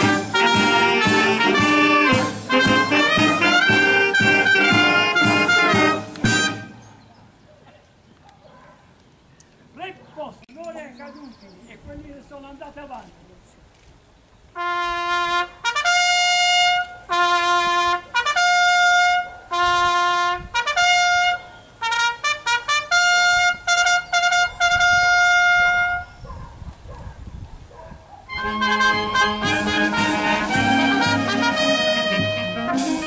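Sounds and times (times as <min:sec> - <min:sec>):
brass band playing: 0:00.0 - 0:06.8, 0:14.6 - 0:26.2, 0:28.3 - 0:33.0
solo trumpet call: 0:00.0 - 0:06.8, 0:14.6 - 0:26.2, 0:28.3 - 0:33.0.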